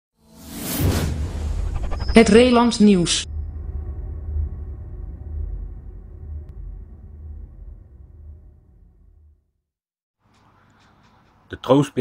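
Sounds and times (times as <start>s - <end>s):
low rumbling drone: 1.0s - 9.7s.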